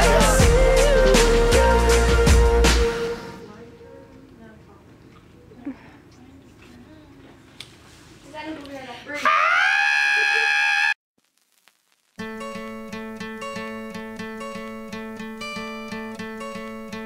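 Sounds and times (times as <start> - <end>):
woman's voice: 3.4 - 7.4, 8.2 - 9.3
strummed acoustic guitar: 12.2 - 17.0.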